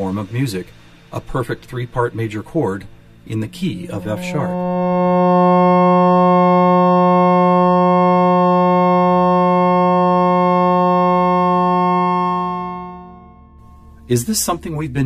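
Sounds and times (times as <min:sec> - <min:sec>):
sustained electronic chord: 0:00.0 - 0:15.0.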